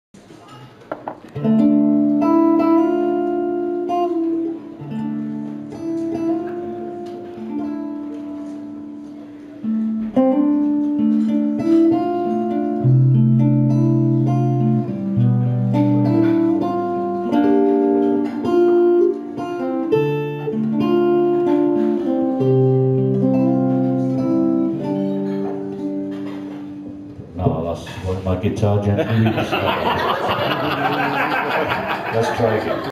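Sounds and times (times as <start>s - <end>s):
acoustic guitar picked melody: 1.3s - 28.1s.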